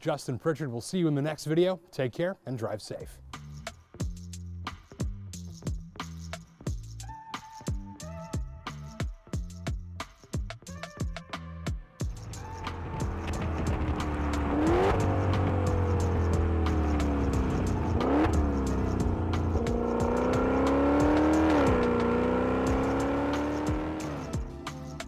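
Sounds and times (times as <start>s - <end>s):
car engine revving hard: 12.6s - 24.4s.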